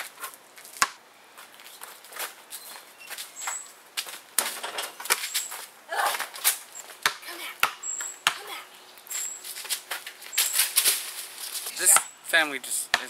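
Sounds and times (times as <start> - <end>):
basketball bouncing on asphalt: 0.8 - 1.0, 6.8 - 8.5, 11.9 - 12.1.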